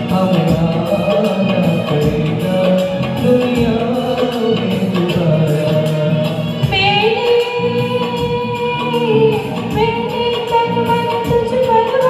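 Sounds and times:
duet singing through microphones: 0.0 - 12.0
recorded backing music: 0.0 - 12.0.

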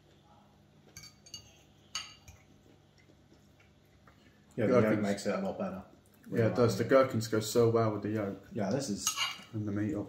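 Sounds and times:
forks clinking on plates: 1.0 - 2.4, 9.0 - 9.6.

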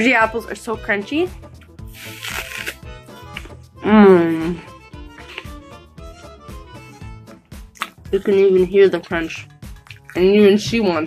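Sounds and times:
biting into crisp apple: 1.9 - 3.6, 7.7 - 8.0
chewing crunches: 1.9 - 3.6, 7.7 - 8.0, 9.7 - 10.2
person humming: 3.8 - 4.7.

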